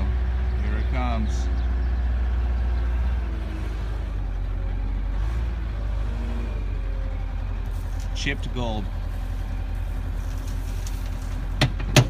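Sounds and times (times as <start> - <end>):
loader engine under load: 0.0 - 12.0.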